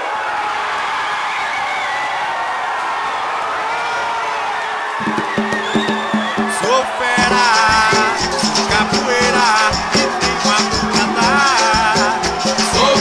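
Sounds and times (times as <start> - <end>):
crowd cheering and shouting: 0.0 - 13.0
music with drone and beat: 7.2 - 13.0.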